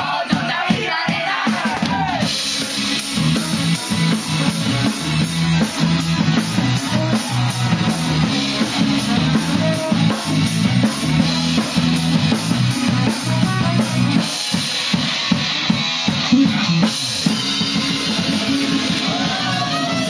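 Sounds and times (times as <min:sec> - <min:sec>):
bass line: 0:00.0 - 0:14.5, 0:15.2 - 0:20.0
drum kit: 0:00.0 - 0:20.0
live band playing: 0:00.0 - 0:20.0.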